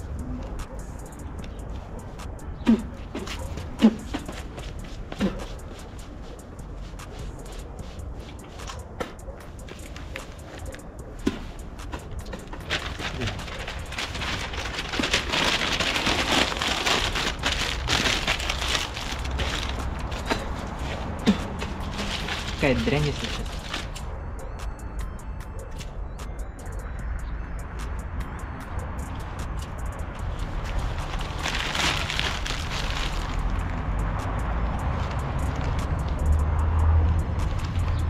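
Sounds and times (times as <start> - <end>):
newspaper rustling and crinkling: 9.8 - 24.0, 30.6 - 33.6.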